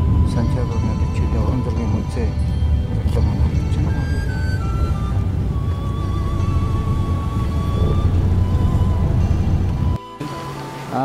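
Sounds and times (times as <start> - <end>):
city street traffic rumble: 0.0 - 11.0
faint steady tone: 0.0 - 11.0.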